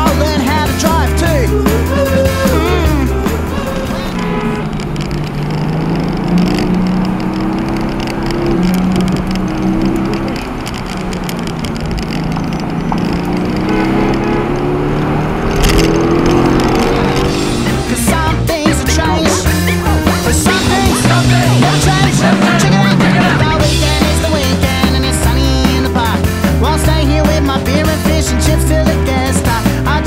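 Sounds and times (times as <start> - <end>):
car engine under load: 0.0 - 30.0
road noise: 0.0 - 30.0.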